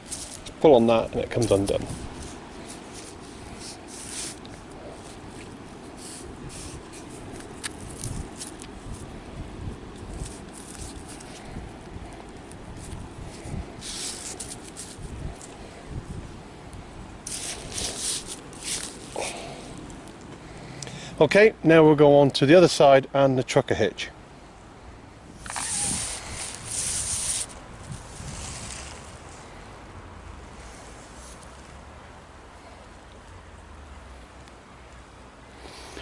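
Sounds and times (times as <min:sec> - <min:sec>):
cord rustling and scraping: 0:00.0 - 0:16.4, 0:17.2 - 0:20.4, 0:25.4 - 0:29.4.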